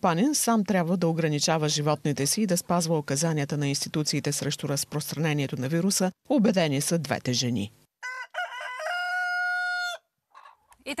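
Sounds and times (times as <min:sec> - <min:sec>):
rooster crowing: 0:08.0 - 0:10.1.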